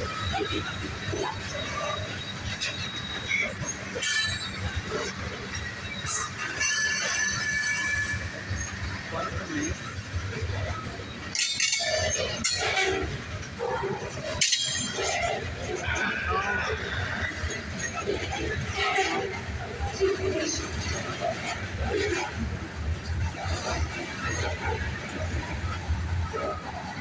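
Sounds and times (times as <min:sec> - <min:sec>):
wheel squeals: 0:00.0 - 0:21.6
steel wheels rumbling on rail: 0:00.0 - 0:27.0.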